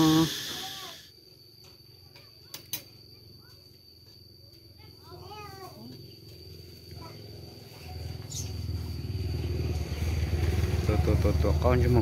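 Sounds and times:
voice-like call: 0.0 - 1.1
motorcycle engine running: 6.4 - 12.0.

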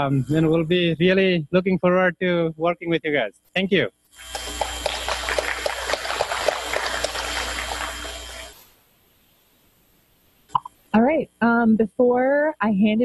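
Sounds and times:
audience applauding: 4.3 - 8.6.

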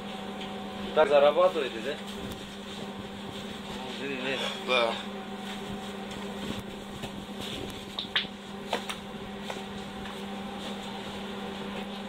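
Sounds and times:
kitchen equipment humming: 0.0 - 12.0.

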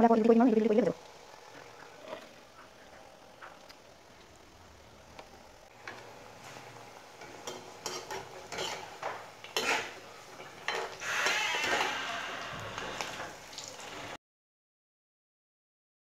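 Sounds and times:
fritters sizzling in hot oil: 5.0 - 14.2
metal spoon scraping a pan: 5.8 - 13.3.

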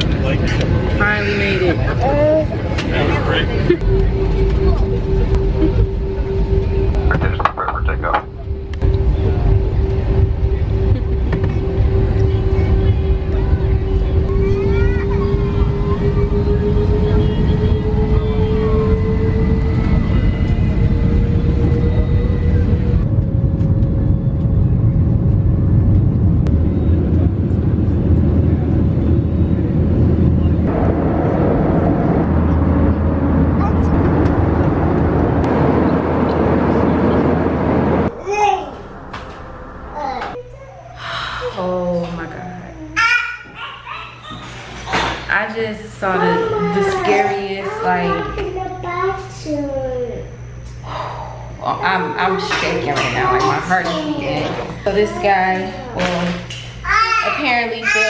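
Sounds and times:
airliner cabin low rumble: 0.0 - 43.0
mid-pitched hum: 0.0 - 58.0.

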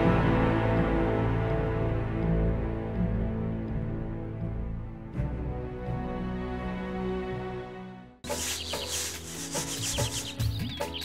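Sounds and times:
grain rasping in a basket: 8.2 - 10.6
small birds chirping: 8.2 - 11.0.

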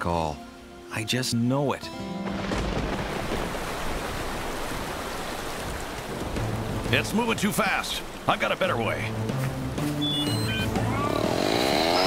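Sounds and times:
rushing water: 0.0 - 12.0.

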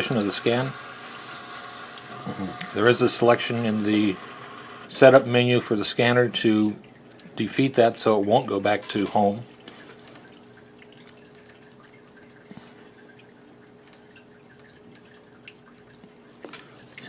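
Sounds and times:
scanner motor humming: 0.0 - 5.3.

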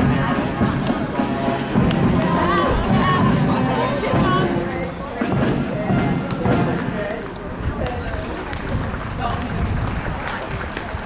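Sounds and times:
outdoor noise: 0.0 - 11.0
people chatting: 0.0 - 11.0.

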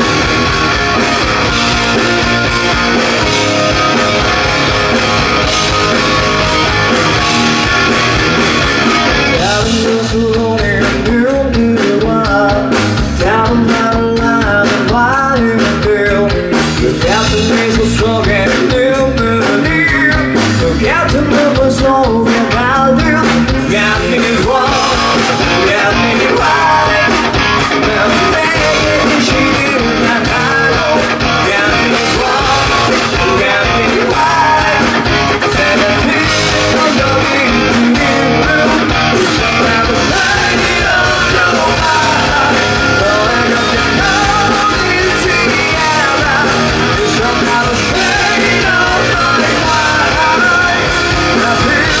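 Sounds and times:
drum kit: 0.0 - 52.0
guitars: 0.0 - 52.0
lead singer's voice: 0.0 - 52.0.

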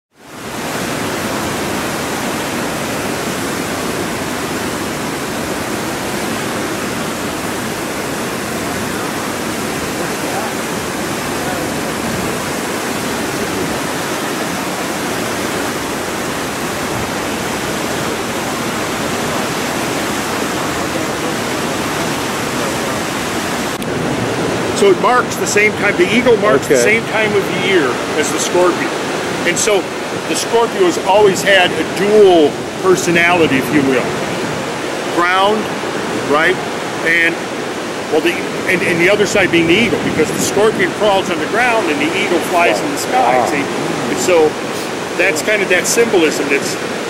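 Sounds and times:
whitewater rapids rushing: 0.1 - 47.0.

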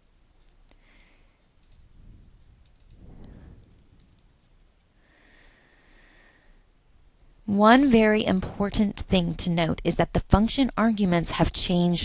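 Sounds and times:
computer mouse clicks: 0.4 - 1.9, 2.6 - 5.1
soft low rumble: 1.6 - 4.9
keyboard keystrokes: 2.6 - 5.0.

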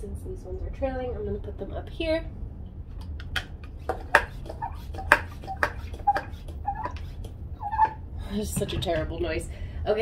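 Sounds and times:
plastic pump strokes clicking: 3.6 - 8.0.

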